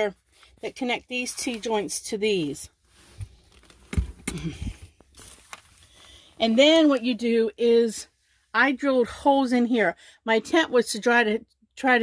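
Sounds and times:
newspaper rustling: 0:00.2 - 0:04.2, 0:04.9 - 0:07.1.

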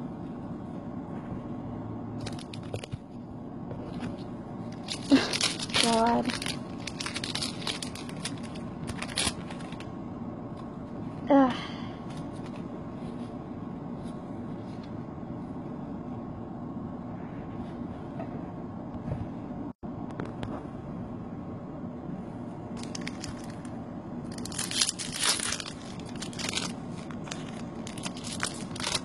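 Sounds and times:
foil wrapper crinkling and tearing: 0:04.8 - 0:09.9, 0:22.8 - 0:29.0.

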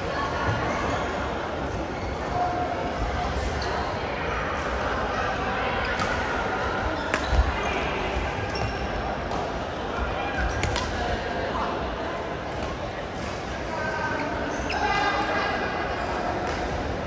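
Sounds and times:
chatter in busy sports hall: 0:00.0 - 0:17.0
racket hitting shuttlecock: 0:07.0 - 0:07.5, 0:10.5 - 0:11.0.

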